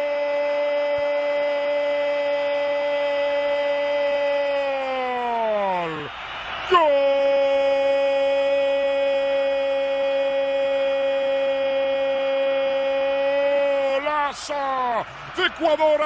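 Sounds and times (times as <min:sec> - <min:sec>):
man shouting drawn-out goal cry: 0:00.0 - 0:16.0.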